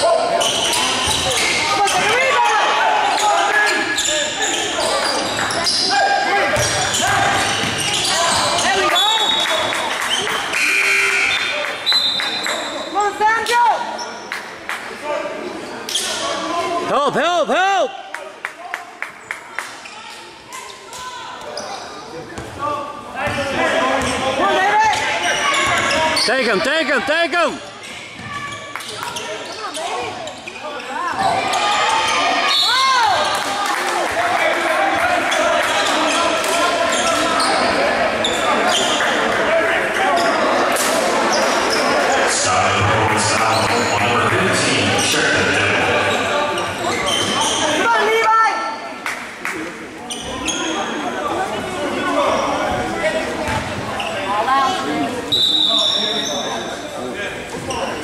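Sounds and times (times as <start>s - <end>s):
sneakers squeaking on floor: 0.2s - 2.3s, 3.1s - 13.0s, 19.3s - 22.6s, 23.2s - 26.6s, 27.6s - 33.4s, 35.3s - 39.1s, 46.0s - 48.0s, 50.0s - 51.0s, 52.2s - 58.0s.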